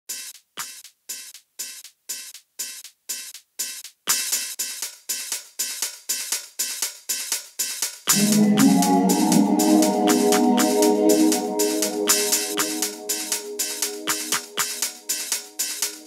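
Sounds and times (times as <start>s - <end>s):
electronic dance percussion loop: 0.1s - 16.0s.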